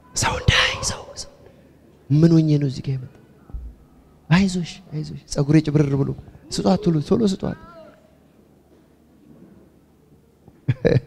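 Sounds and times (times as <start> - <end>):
man whispering into microphone: 0.1 - 1.5.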